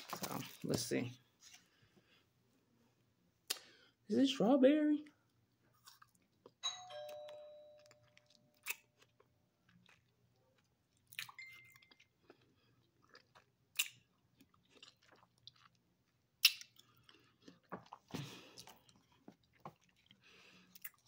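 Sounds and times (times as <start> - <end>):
crunching and chewing: 5.5 - 6.6, 7.8 - 21.0.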